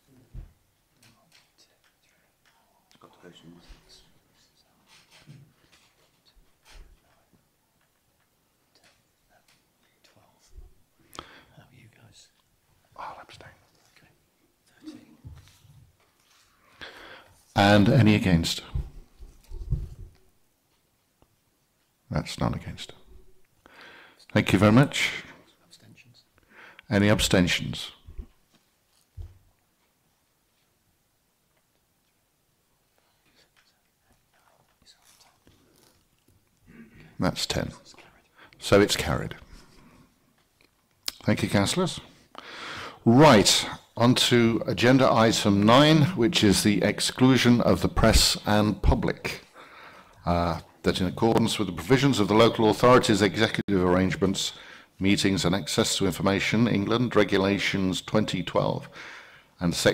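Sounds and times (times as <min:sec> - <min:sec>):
faint whispering: 0:01.0 - 0:07.4, 0:08.6 - 0:15.3, 0:24.2 - 0:26.4, 0:32.9 - 0:36.1, 0:36.7 - 0:40.1.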